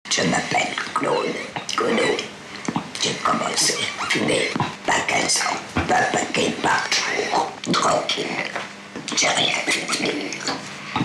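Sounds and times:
woman speaking rough breathy voice: 3.0s - 10.5s.

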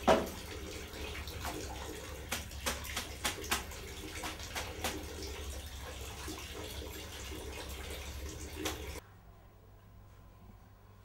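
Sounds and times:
water splashing in a plastic tub: 0.0s - 9.0s.

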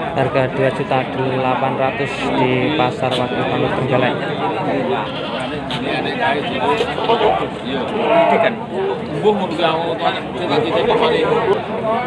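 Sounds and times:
crowd chatter: 0.0s - 12.0s
goats bleating: 4.9s - 5.7s, 7.9s - 8.6s.

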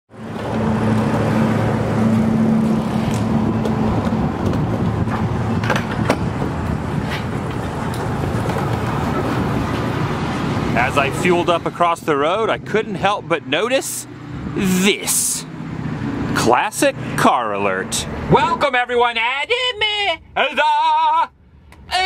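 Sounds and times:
low engine hum: 0.1s - 18.9s
traffic noise: 0.1s - 22.0s.

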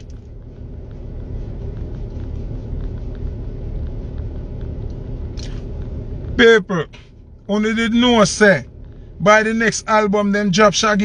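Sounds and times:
faint light ticks: 0.0s - 6.0s
low rumble inside car: 0.0s - 11.0s.

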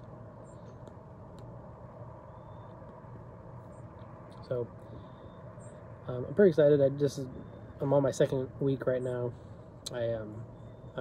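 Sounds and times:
outdoor background noise: 0.0s - 11.0s
faint high chirps: 2.2s - 3.0s, 3.6s - 6.4s.

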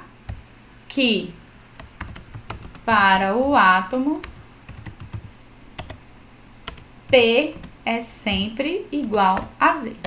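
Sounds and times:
computer keyboard typing: 1.8s - 6.0s, 6.6s - 10.0s.

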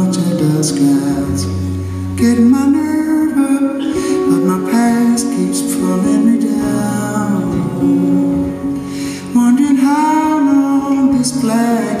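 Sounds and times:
acoustic guitar: 0.0s - 12.0s
men singing wordless harmony: 0.0s - 12.0s.

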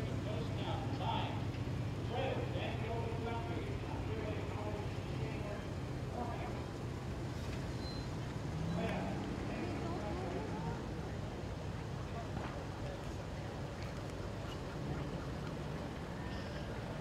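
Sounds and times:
people talking: 0.0s - 6.7s, 8.7s - 15.5s
car engines humming: 0.0s - 17.0s.

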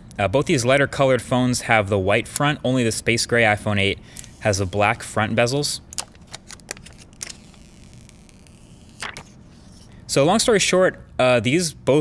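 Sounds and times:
plastic film crinkling: 5.9s - 9.9s.

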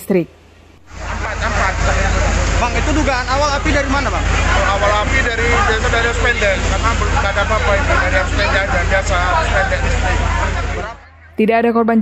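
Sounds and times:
low engine rumble: 0.0s - 12.0s
man speaking: 0.9s - 11.1s
crowd chatter: 0.9s - 12.0s.

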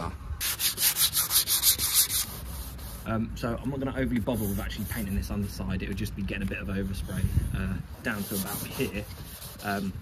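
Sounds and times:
hand sanding strokes: 0.4s - 10.0s.

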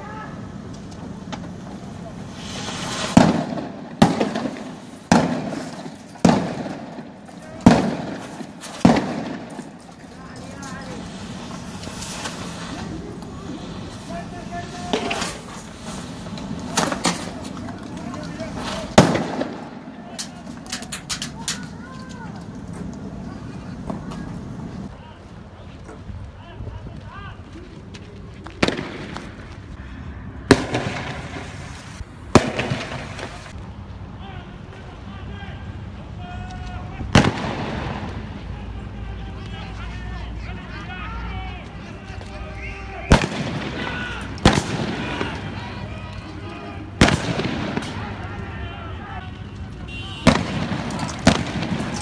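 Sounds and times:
steady background din: 0.0s - 24.9s
explosive bangs with echo: 3.1s - 9.8s, 18.9s - 19.9s, 32.3s - 33.3s, 43.1s - 45.4s, 47.0s - 48.0s, 50.2s - 52.0s.

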